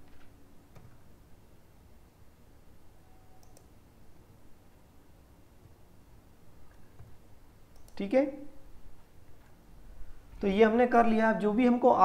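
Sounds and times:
low room hum: 0.0s - 12.0s
computer mouse clicks: 0.1s - 1.0s, 3.3s - 3.8s, 6.7s - 8.0s.

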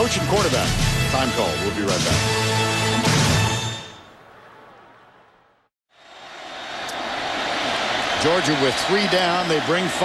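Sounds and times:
stadium crowd roaring: 4.1s - 10.0s.

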